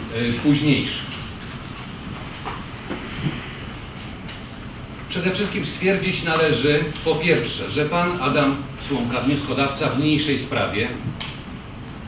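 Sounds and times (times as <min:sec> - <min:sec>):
low rumble and hiss: 0:00.0 - 0:12.0.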